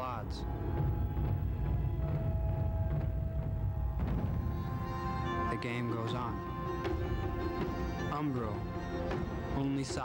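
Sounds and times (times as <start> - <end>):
background music held note: 0.0 - 10.0.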